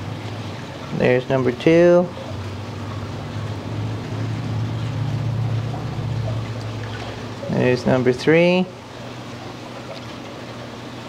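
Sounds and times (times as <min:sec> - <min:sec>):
low pump hum: 0:00.0 - 0:11.0
water running and trickling: 0:00.0 - 0:11.0.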